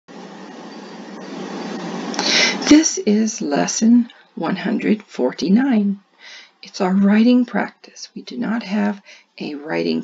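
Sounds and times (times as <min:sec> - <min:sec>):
steady background hiss: 0:00.1 - 0:10.0.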